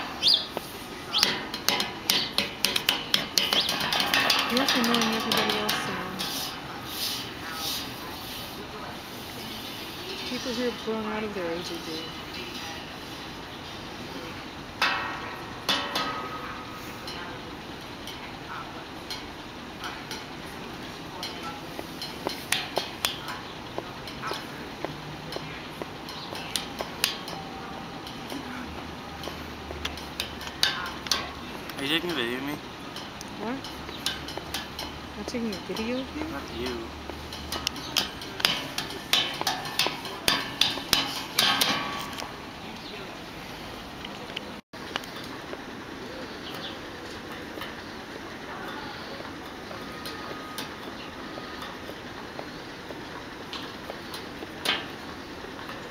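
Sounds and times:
steady background noise: 0.0s - 55.9s
people talking indistinctly: 4.4s - 13.3s, 35.1s - 37.1s.

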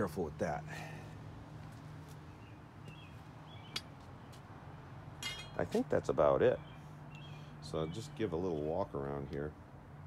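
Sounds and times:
faint bird chirps: 6.6s - 8.7s.

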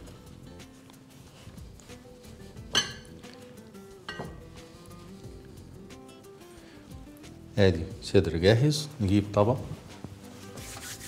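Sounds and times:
soft background music: 0.0s - 11.0s
glass bowl clinks: 2.7s - 3.1s.

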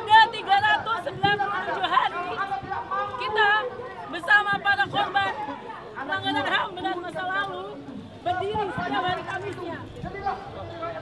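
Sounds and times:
woman addressing a crowd: 0.0s - 10.0s
crowd chatter: 0.0s - 11.0s.

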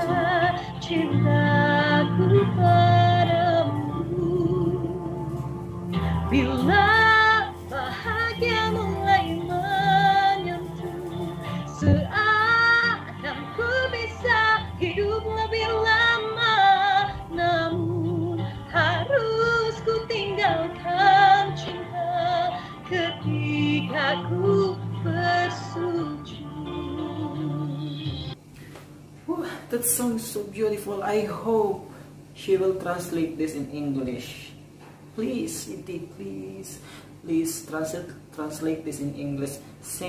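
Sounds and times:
low sustained accompaniment: 0.0s - 27.9s
woman singing a soft ballad: 0.0s - 28.4s, 34.1s - 40.0s.

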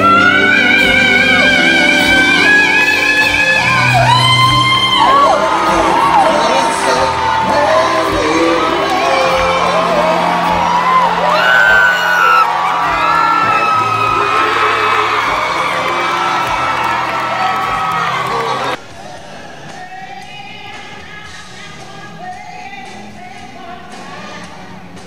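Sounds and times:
live band holding chords: 0.0s - 25.0s
audience cheering and whooping: 1.7s - 18.8s.

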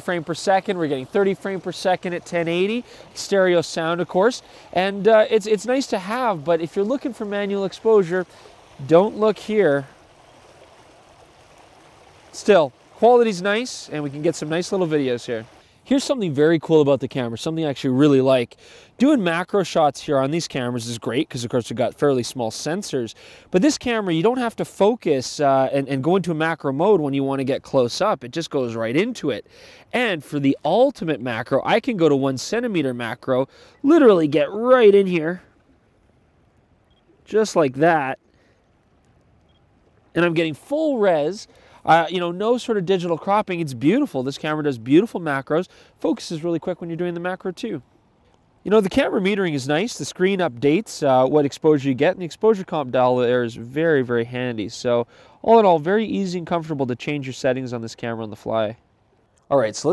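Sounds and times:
man speaking: 0.0s - 10.0s, 12.4s - 35.5s, 37.2s - 38.2s, 40.2s - 47.8s, 48.6s - 58.8s, 59.5s - 59.9s
river water rushing: 0.0s - 16.5s
faint outdoor background noise: 0.0s - 59.9s.

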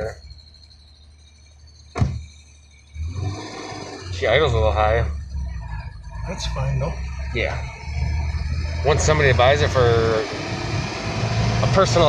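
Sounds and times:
car engine humming: 0.0s - 12.0s
sharp knock: 2.0s - 2.2s.

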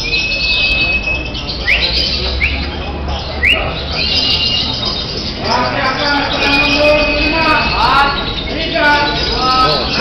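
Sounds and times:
lovebirds chirping: 0.0s - 10.0s.

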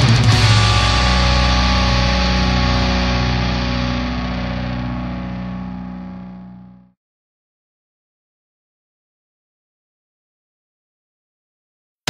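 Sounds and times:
distorted electric guitar chord ringing: 0.0s - 6.9s.

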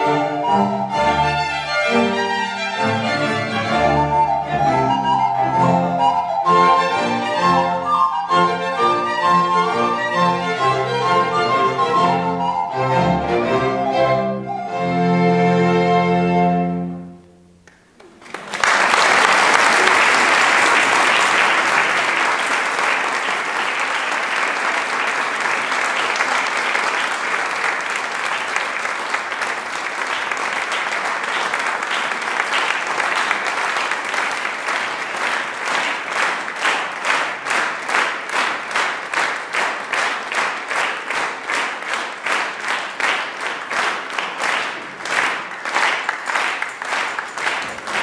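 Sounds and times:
rhythmic clapping in unison: 17.6s - 48.0s
audience applauding: 17.7s - 48.0s.

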